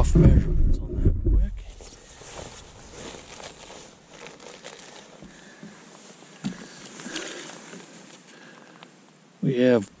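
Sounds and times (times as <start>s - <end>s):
rustling and crinkling: 0.0s - 9.2s.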